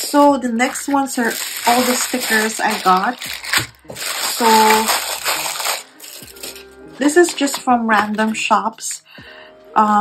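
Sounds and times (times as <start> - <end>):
plastic packaging rustling: 0.0 - 8.4
faint music with held notes: 0.0 - 10.0.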